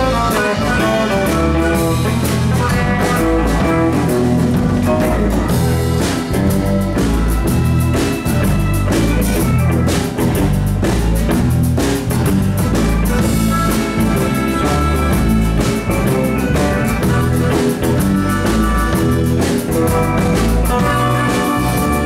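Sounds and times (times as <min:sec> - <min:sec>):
blues band playing: 0:00.0 - 0:22.0
harmonica: 0:00.0 - 0:22.0.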